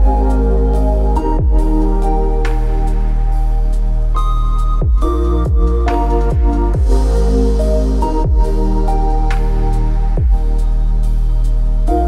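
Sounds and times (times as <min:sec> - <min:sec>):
lo-fi hip-hop instrumental: 0:00.0 - 0:12.0
low drum hit: 0:04.8 - 0:07.0.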